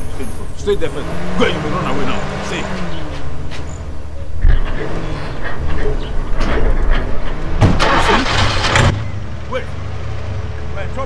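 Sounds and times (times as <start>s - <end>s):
car engine idling: 0.0s - 11.0s
engine revving surge: 0.0s - 11.0s.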